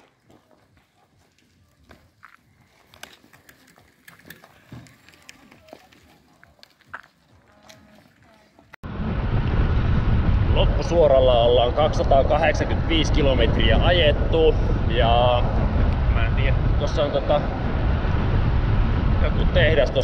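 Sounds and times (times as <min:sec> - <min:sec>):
bicycle road rumble: 0:00.0 - 0:20.0
wind noise on microphone: 0:08.8 - 0:20.0.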